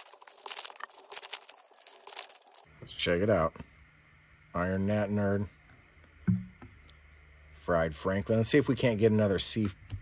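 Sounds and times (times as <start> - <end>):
foil wrapper crinkling: 0.0 - 2.7.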